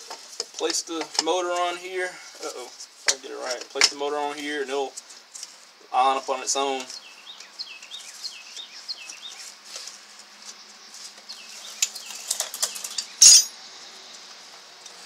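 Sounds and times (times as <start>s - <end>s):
bird chirping: 6.7s - 9.5s, 11.3s - 13.5s.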